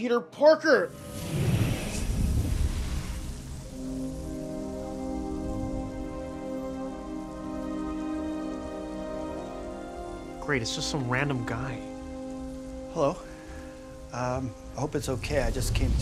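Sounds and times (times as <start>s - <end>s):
low rumble: 0.9s - 7.4s, 14.4s - 16.0s
crackling fizz of sparks: 0.9s - 16.0s
held musical chord: 3.6s - 15.2s.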